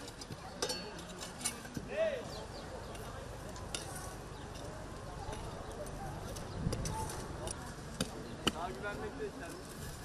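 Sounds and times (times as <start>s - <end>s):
hoe scraping in dry soil: 2.5s - 8.0s, 8.8s - 10.0s.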